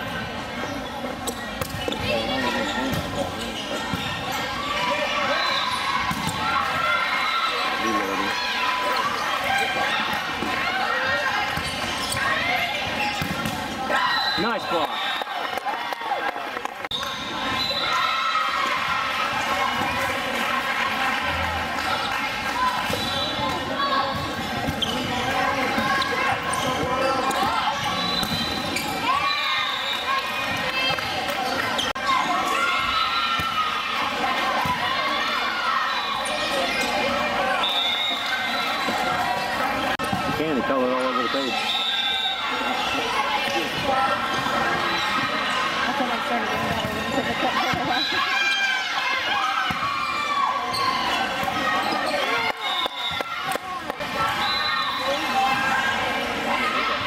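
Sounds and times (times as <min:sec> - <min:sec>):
voices echoing in a hall: 0:00.0 - 0:57.0.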